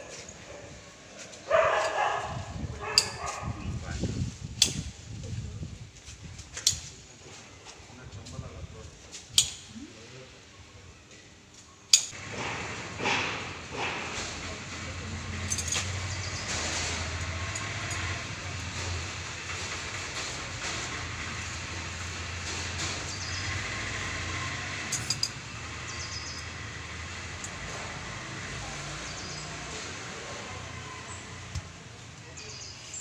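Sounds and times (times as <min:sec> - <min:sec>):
outdoor background noise: 0:00.0 - 0:33.0.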